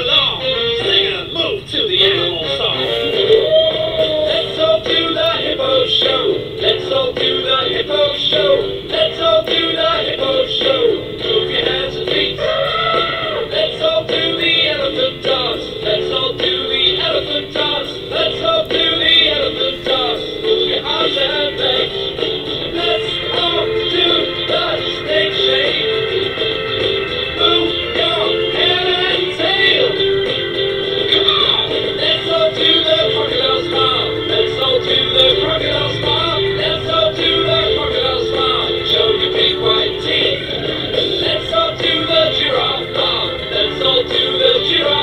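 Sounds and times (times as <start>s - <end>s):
backing track music: 0.0s - 45.0s
children's song singing: 0.0s - 45.0s.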